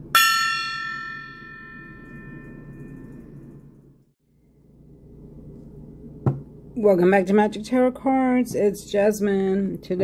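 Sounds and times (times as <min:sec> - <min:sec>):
small brass gong ringing: 0:00.1 - 0:03.2.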